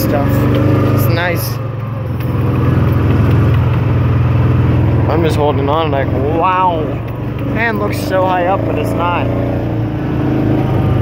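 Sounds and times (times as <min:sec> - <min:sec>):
utility vehicle engine running: 0:00.0 - 0:11.0.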